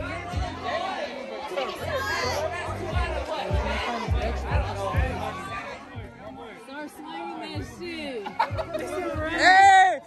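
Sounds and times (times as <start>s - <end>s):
music with deep bass beat: 0.0s - 0.9s, 1.8s - 6.4s, 7.5s - 10.0s
many voices chattering: 0.0s - 10.0s.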